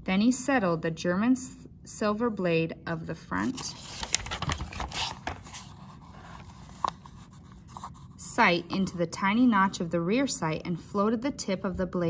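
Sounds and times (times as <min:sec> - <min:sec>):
paper rustling: 0:03.4 - 0:08.1
book page turning: 0:03.4 - 0:08.2.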